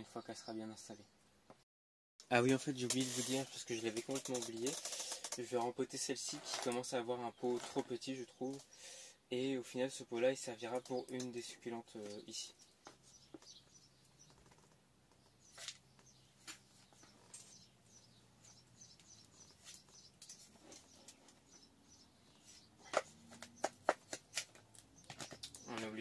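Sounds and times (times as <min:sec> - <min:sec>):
trowel scraping soil in a pot: 0:02.8 - 0:05.2, 0:06.2 - 0:08.0.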